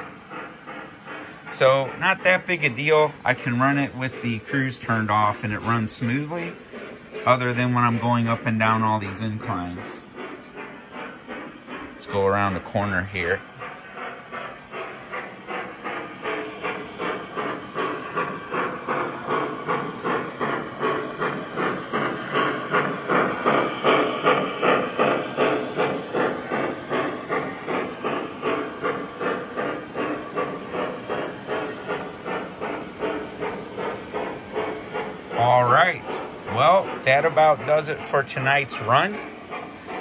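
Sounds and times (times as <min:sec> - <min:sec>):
model steam locomotive chuffing: 0:00.0 - 0:40.0
train rolling on track: 0:00.0 - 0:40.0.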